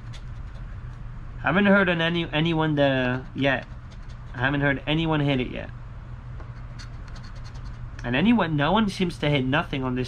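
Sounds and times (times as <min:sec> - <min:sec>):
coin scratching lottery ticket: 0:03.2 - 0:04.5, 0:06.6 - 0:07.8.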